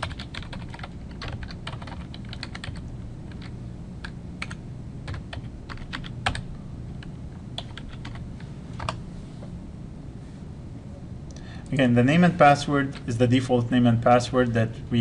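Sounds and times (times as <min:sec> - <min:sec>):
computer keyboard typing: 0:00.0 - 0:06.5, 0:07.6 - 0:08.2, 0:08.8 - 0:09.0.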